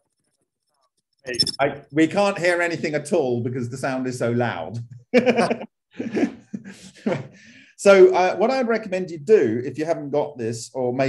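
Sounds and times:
man laughing: 4.9s - 7.4s.

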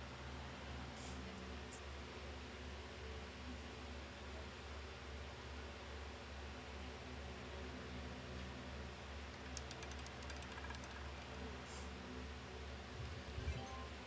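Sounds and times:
electrical hum with hiss: 0.0s - 14.0s.

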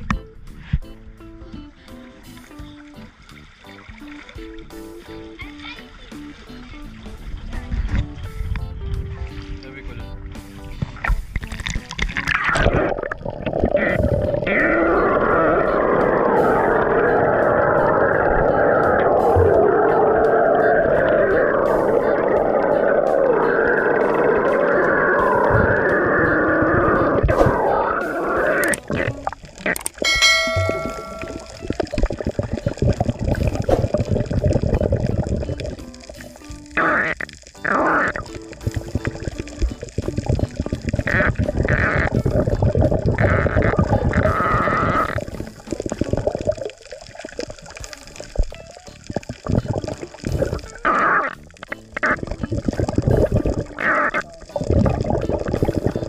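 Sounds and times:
water sloshing and bubbling underwater: 0.0s - 56.0s
background music: 0.1s - 13.1s, 14.0s - 29.4s, 30.0s - 46.7s, 47.6s - 56.0s
short ringing tone: 30.0s - 31.7s.

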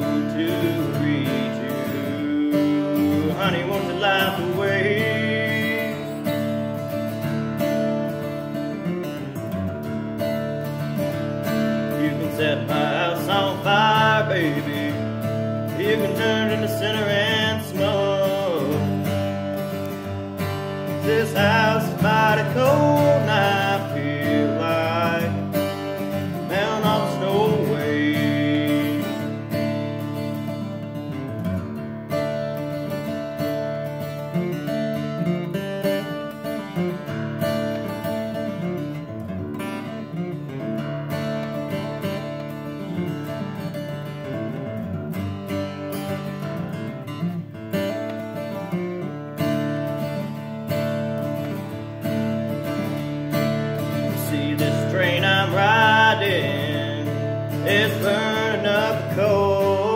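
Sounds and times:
person singing: 0.0s - 6.5s, 11.8s - 19.3s, 20.8s - 29.4s, 53.8s - 59.9s
acoustic guitar strumming: 0.0s - 59.9s.

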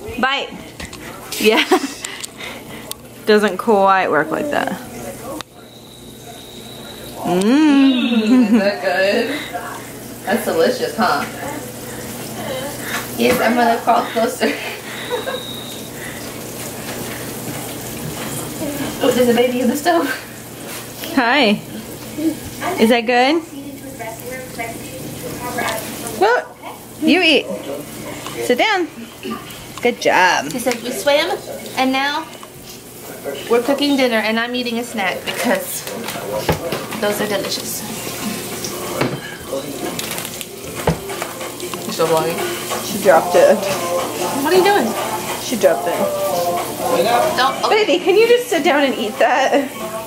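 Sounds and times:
kitchen cooking hiss: 0.0s - 50.0s
food sizzling in a pan: 4.2s - 50.0s.

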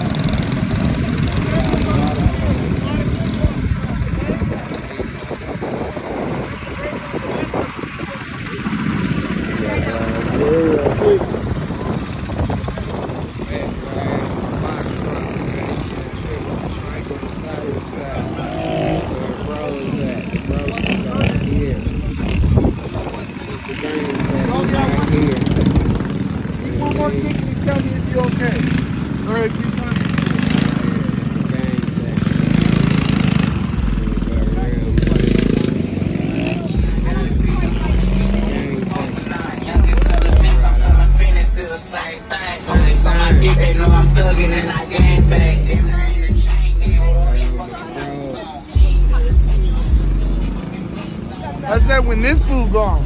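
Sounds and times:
mini bike engines running: 0.0s - 43.2s
people talking: 0.0s - 53.0s.

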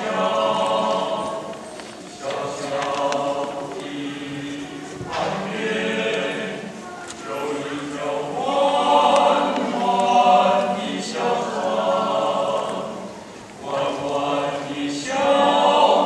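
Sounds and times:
men's choir singing: 0.0s - 16.0s.

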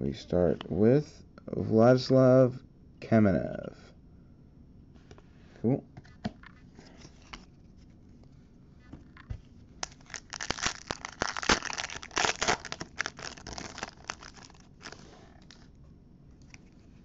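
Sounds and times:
foil wrapper crinkling: 9.8s - 15.6s.

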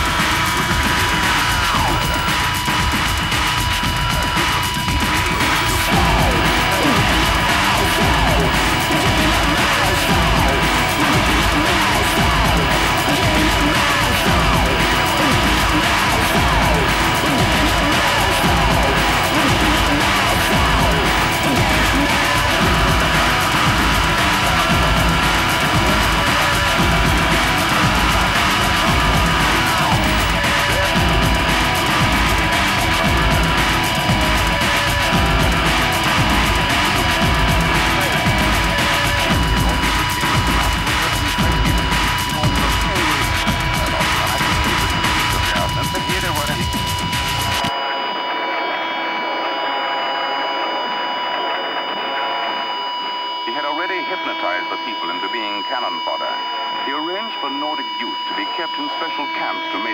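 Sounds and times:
distorted electric guitars: 0.0s - 59.9s
drums: 0.0s - 59.9s
high whining tones: 0.0s - 59.9s.

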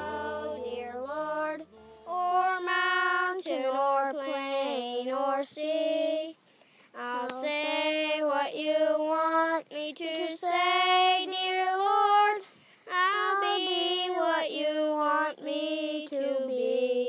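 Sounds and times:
high voice singing slow melody: 0.0s - 6.2s.

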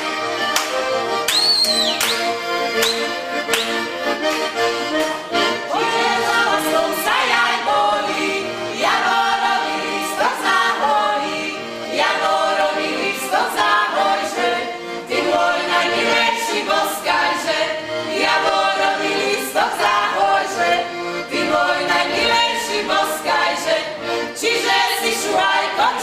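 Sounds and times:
group singing in harmony: 5.3s - 26.0s.

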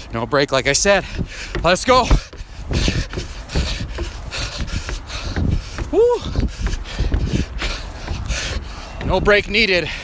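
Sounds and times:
man breathing hard: 1.0s - 9.0s, 9.8s - 10.0s.

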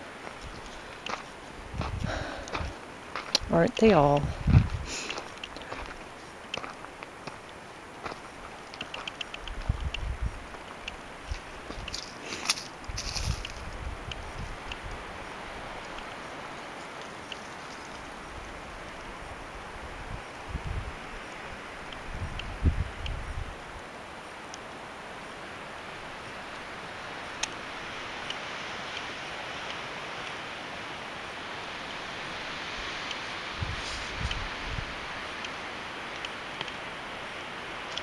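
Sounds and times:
footsteps crunching on trail: 0.0s - 19.1s, 32.8s - 34.6s
wind rumbling on microphone: 0.0s - 24.4s, 31.3s - 38.0s
outdoor ambience hiss: 0.0s - 38.0s
faint ticks: 0.2s - 3.5s, 4.2s - 15.0s, 15.8s - 18.1s, 27.3s - 27.6s, 33.0s - 33.2s, 35.4s - 36.8s, 37.8s - 38.0s.

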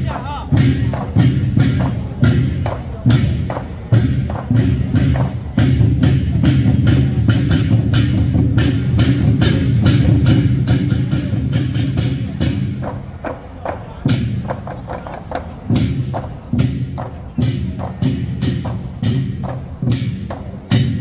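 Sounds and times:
drums beaten together: 0.0s - 21.0s.

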